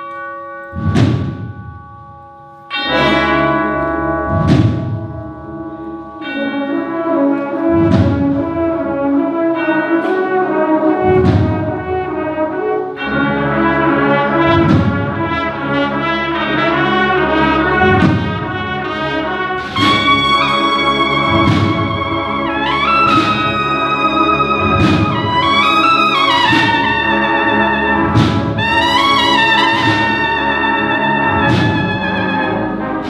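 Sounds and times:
marching band playing: 0.6 - 33.0
heavy drum strikes: 0.8 - 2.2, 4.2 - 5.3, 7.8 - 8.8, 11.0 - 12.2, 14.4 - 15.5, 17.8 - 18.9, 19.6 - 23.8, 24.5 - 27.2, 28.0 - 30.6, 31.3 - 32.5.

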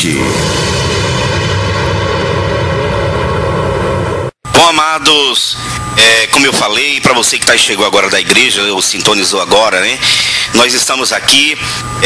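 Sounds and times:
low rumble: 0.0 - 4.4.

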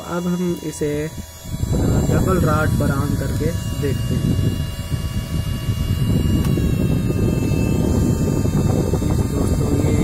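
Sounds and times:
cooling fan rush of air: 0.0 - 10.0.

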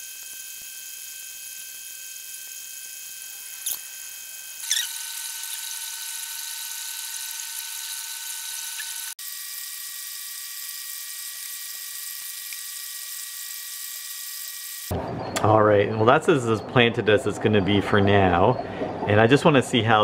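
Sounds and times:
high-pitched electrical whine: 0.0 - 20.0.

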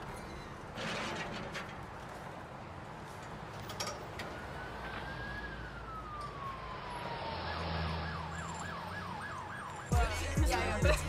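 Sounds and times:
siren wailing and yelping: 4.2 - 10.9.

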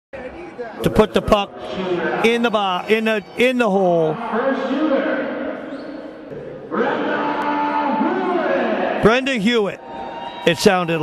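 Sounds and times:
echoing murmur of voices: 0.2 - 11.0.

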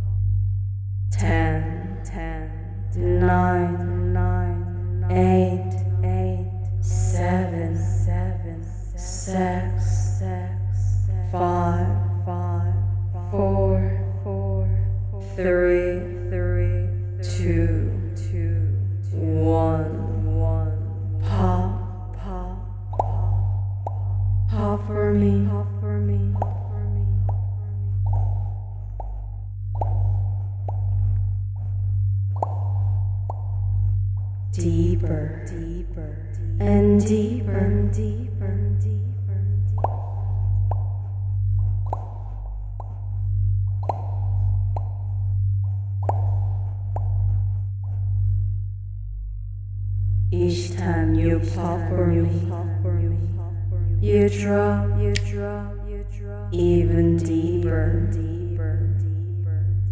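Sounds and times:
steady low drone: 0.0 - 59.9
woman chanting long syllable: 1.1 - 23.5, 24.5 - 28.1, 34.5 - 40.4, 50.3 - 59.9.

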